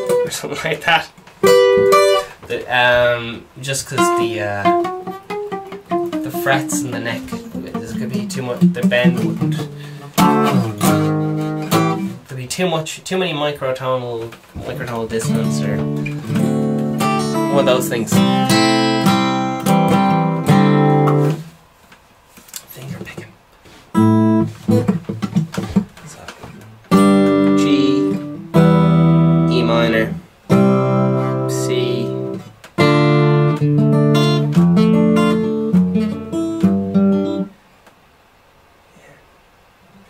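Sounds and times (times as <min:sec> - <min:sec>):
acoustic guitar chords: 0:00.0 - 0:12.8, 0:14.2 - 0:21.6, 0:22.9 - 0:37.6.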